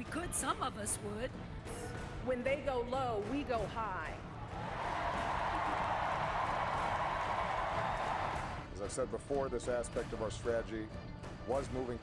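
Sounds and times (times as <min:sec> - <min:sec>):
crowd applauding: 0:04.3 - 0:08.7
crowd cheering: 0:04.3 - 0:08.7.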